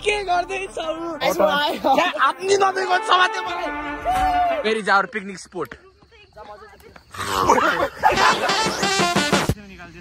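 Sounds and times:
loud wordless shout: 0.0 - 5.2.

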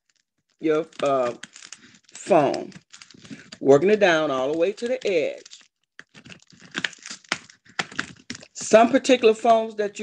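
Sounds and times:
woven placemat crinkling: 0.0 - 10.0.

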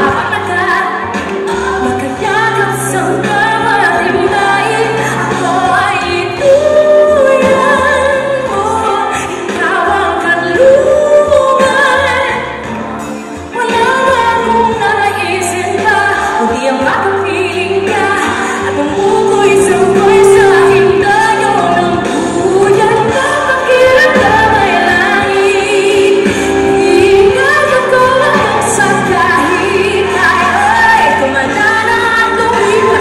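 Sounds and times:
pop accompaniment: 0.0 - 33.0
woman singing with vibrato: 0.0 - 33.0.

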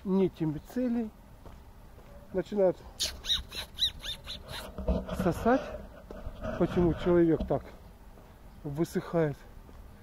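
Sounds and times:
dog whining: 3.0 - 4.8.

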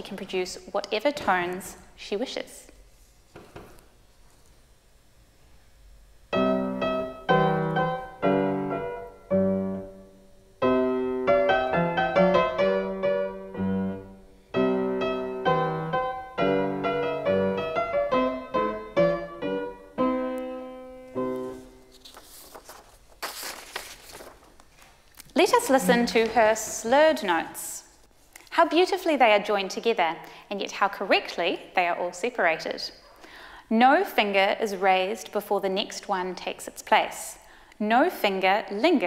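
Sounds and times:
fortepiano playing calm passage: 10.8 - 21.9.

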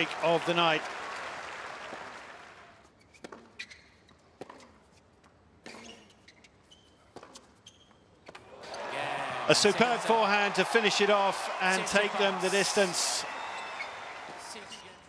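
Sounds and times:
crowd applause: 0.0 - 2.8, 8.5 - 15.0
crowd cheering: 0.0 - 2.8, 8.5 - 15.0.

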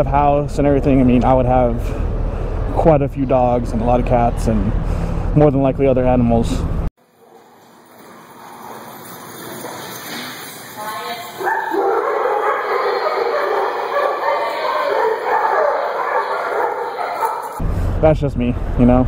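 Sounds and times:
dogs barking: 7.1 - 7.6, 11.3 - 17.6.

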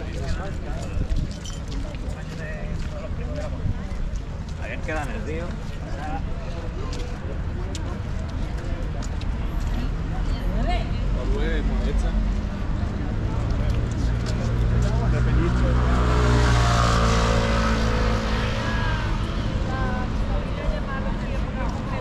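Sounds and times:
passers-by talking: 0.0 - 22.0
car passing: 10.0 - 22.0.

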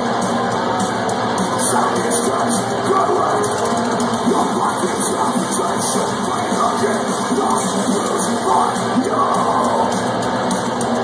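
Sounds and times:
live heavy metal band: 0.0 - 11.0.

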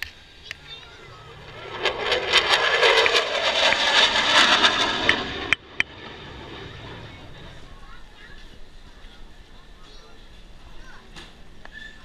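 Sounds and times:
jet engine rush with crackle: 0.0 - 9.5.

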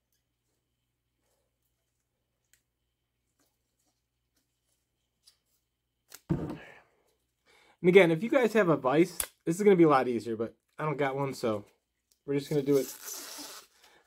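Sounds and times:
man speaking: 7.8 - 11.7, 12.3 - 13.1.

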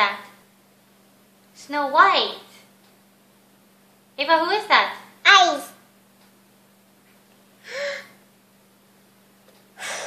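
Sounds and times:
person gasping: 7.6 - 8.2, 9.8 - 10.0.

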